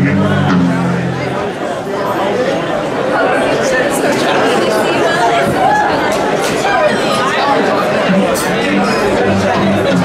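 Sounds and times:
bass and guitar notes ringing: 0.0 - 1.7, 8.1 - 10.0
audience chattering: 0.0 - 10.0.

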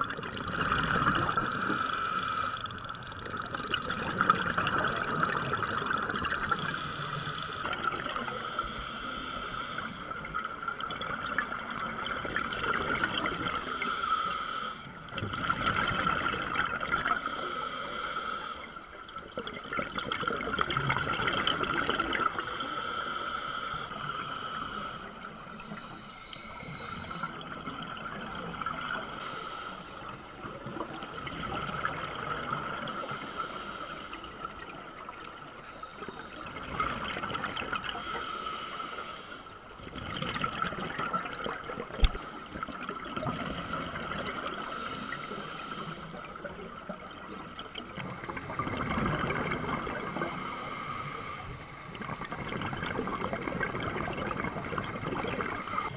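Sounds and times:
regulator breath hissing: 1.4 - 2.8, 6.5 - 10.3, 13.6 - 15.0, 17.1 - 18.8, 22.3 - 27.4, 29.0 - 30.0, 32.8 - 34.4, 37.9 - 39.6, 44.6 - 46.9, 50.0 - 51.8, 55.6 - 55.9.

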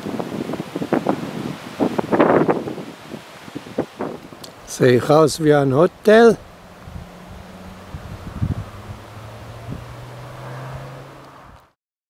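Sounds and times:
wind thumps on microphone: 0.0 - 4.6, 6.8 - 10.2
gusty wind: 0.0 - 11.8
vehicle engine humming: 3.4 - 11.8.

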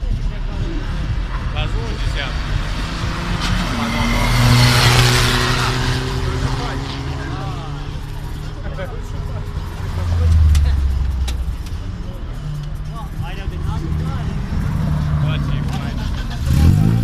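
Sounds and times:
crowd chatter: 0.0 - 17.0
engines humming: 0.0 - 17.0
engine revving sharply: 1.8 - 8.0, 14.8 - 17.0.

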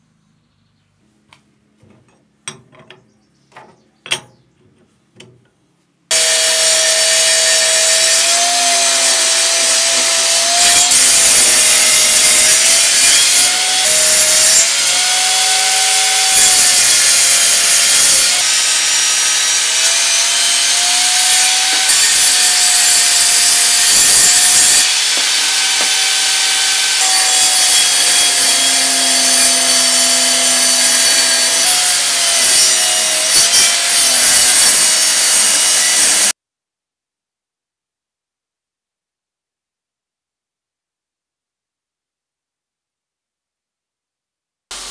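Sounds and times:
saw cutting wood: 6.1 - 36.4
table saw blade whine: 6.1 - 36.4.

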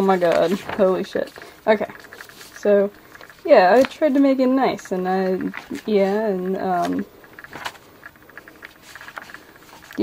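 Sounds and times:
paper pages rustling: 0.0 - 10.0
small paper ticks: 0.0 - 10.0.

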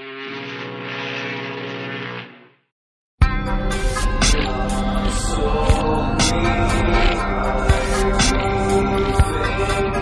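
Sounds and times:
steady multi-pitch drone: 0.0 - 2.6, 3.3 - 10.0.

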